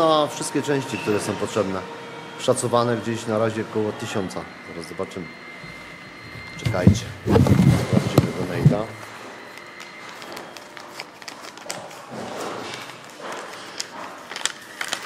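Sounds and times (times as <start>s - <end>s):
handling knocks and rustles: 6.2s - 9.0s
paper crinkling and clicking: 6.6s - 15.0s.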